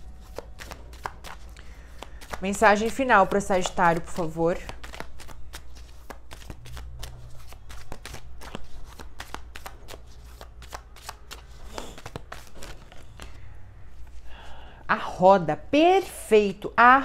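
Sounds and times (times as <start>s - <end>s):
cards being shuffled: 0.1s - 13.4s.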